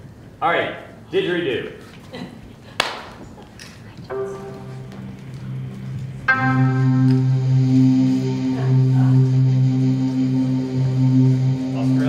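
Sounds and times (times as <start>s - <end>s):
electronic keyboard chords: 4.1s - 12.0s.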